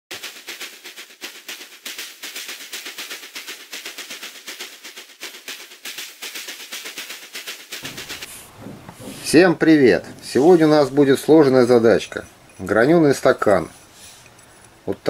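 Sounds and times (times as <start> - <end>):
sharp percussive hits: 0.1 - 12.8.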